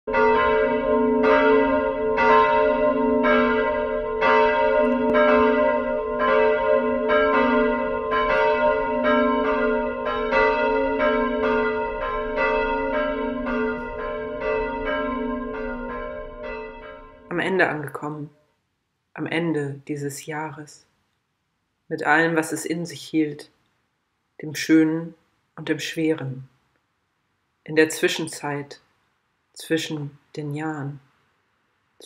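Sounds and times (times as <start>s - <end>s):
church bell ringing: 0.1s - 17.4s.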